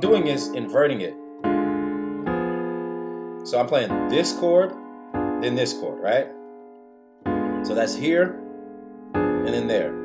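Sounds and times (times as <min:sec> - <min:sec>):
piano chords ringing: 0:00.0 - 0:10.0.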